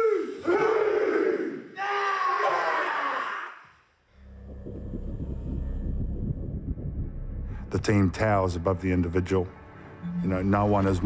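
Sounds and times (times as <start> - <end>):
low musical drone: 4.2 - 11.0.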